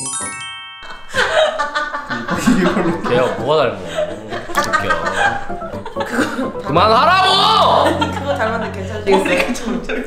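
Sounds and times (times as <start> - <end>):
people laughing: 0.8 - 10.0.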